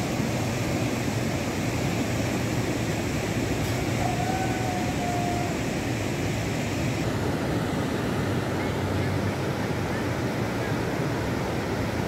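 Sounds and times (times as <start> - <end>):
river rushing: 0.0 - 12.0.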